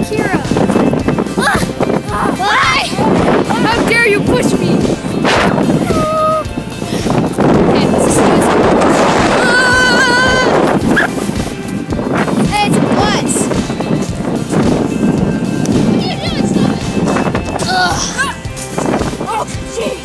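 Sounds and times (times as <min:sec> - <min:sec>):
wind rushing: 0:00.0 - 0:20.0
child crying out: 0:05.8 - 0:06.5, 0:09.4 - 0:10.5, 0:17.6 - 0:18.4.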